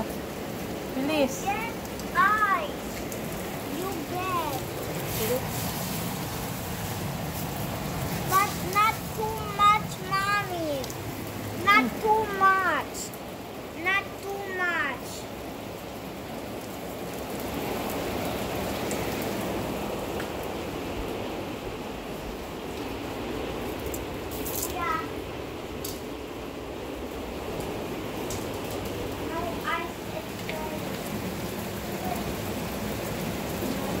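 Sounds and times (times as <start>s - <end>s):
rain and hail falling: 0.0s - 34.0s.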